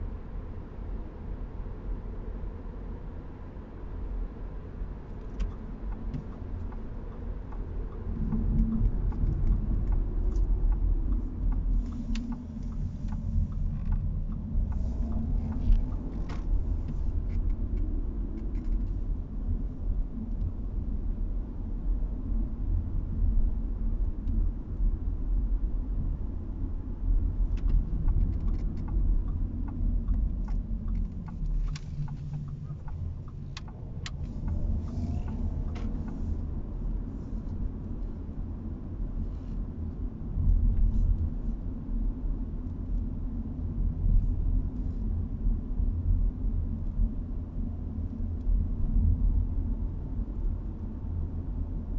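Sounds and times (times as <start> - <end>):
car road and engine rumble: 0.0 - 51.9.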